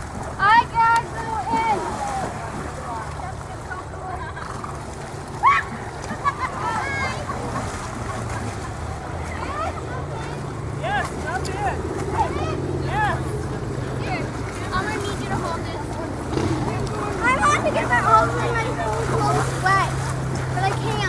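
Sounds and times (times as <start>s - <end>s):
people talking indistinctly: 0.4s - 21.0s.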